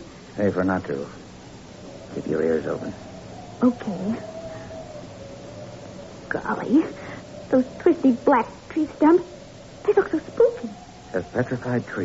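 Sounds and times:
faint steady high tone: 0.0 - 12.0
recording hiss: 0.0 - 12.0.

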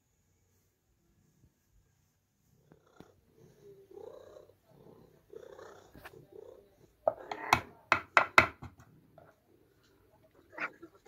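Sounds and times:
cat purring: 0.5 - 7.5.

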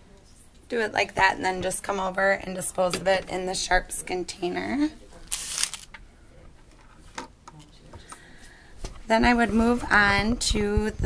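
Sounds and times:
glove rustle: 5.2 - 5.9.

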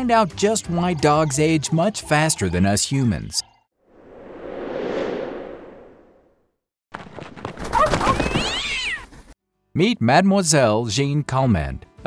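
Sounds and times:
whoosh: 3.8 - 6.6.

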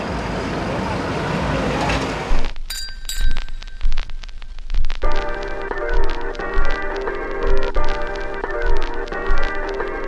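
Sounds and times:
road noise: 0.0 - 2.7.

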